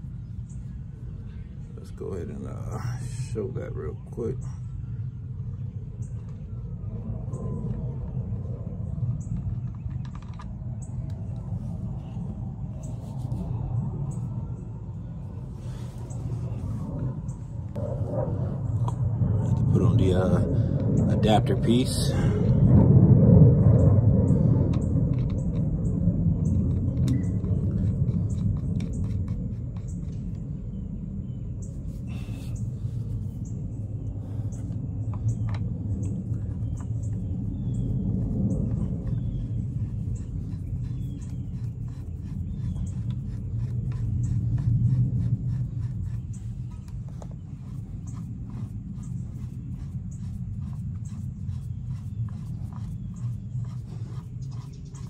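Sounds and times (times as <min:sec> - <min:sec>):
low uneven rumble: 0:00.0 - 0:55.0
faint metal clicks and scrapes: 0:09.2 - 0:11.5.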